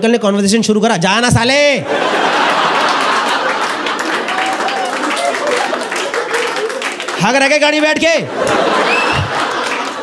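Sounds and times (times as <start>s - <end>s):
audience laughing: 1.8s - 7.2s, 7.9s - 10.0s
audience applauding: 2.2s - 10.0s.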